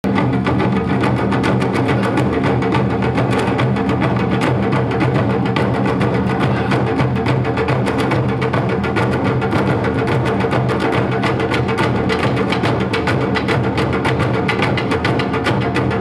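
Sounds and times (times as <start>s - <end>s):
taiko ensemble drumming: 0.0s - 16.0s.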